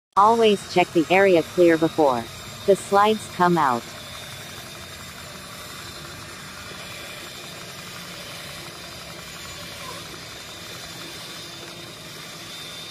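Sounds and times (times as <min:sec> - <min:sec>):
faint high whine: 0:00.2 - 0:12.9
mechanical hum: 0:00.2 - 0:12.9.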